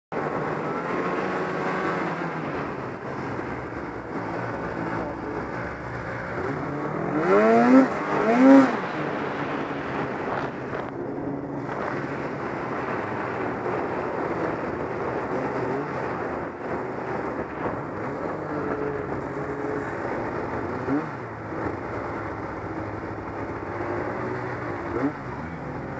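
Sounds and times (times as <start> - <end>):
engine revving: 0.1 - 25.9
snowmobile engine running: 0.2 - 25.9.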